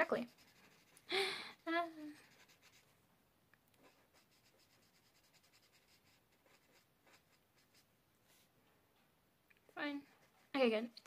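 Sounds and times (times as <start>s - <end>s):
marker scratching on paper: 0.0s - 2.9s, 3.8s - 7.9s.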